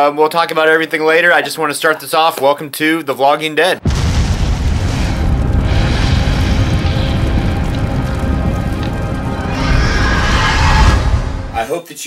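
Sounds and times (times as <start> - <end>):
low rumble: 3.8 - 11.6
horror music: 3.9 - 11.6.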